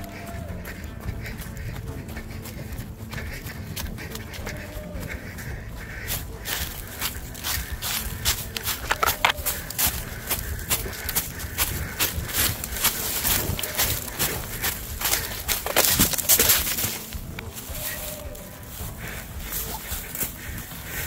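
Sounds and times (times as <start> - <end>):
footsteps running through dry leaves: 0.0 - 21.0.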